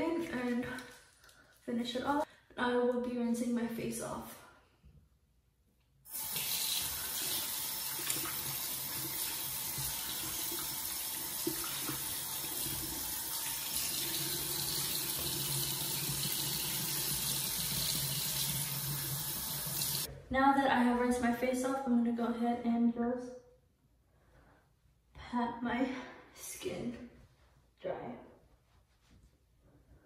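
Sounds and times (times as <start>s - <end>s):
face being rinsed: 0.4s - 1.7s, 6.1s - 20.1s.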